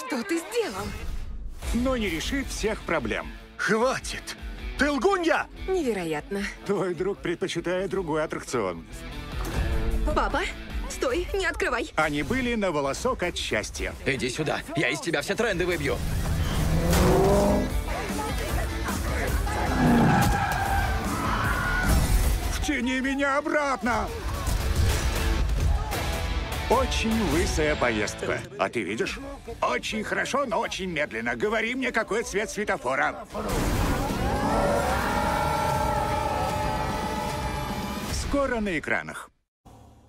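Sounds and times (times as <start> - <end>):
background music: 0.0 - 39.0
car tyres squealing: 16.0 - 17.8, 19.5 - 21.9
car rumble: 16.0 - 18.0
men screaming: 19.4 - 22.0, 33.9 - 38.1.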